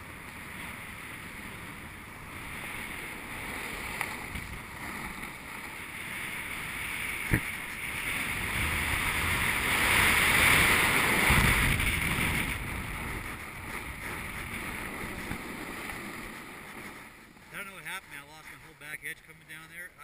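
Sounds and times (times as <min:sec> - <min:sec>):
snowboard scraping over snow: 0:00.0 - 0:20.0
wind on microphone: 0:01.2 - 0:05.7, 0:06.3 - 0:17.2.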